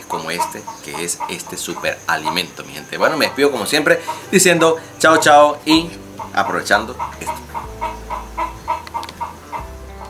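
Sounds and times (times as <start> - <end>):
chicken clucking: 0.0 - 5.3, 6.2 - 9.7.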